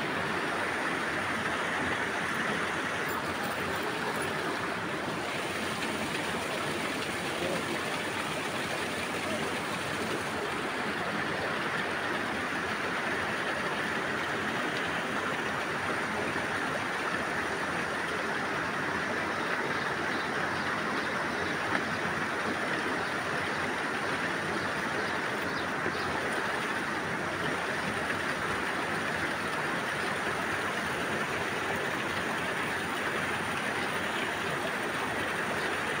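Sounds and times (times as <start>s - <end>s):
water flowing in rocky stream: 0.0s - 36.0s.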